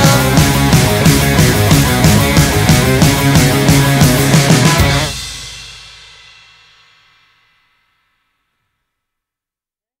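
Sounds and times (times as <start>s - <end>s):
rock band chord ringing out: 0.0s - 6.8s.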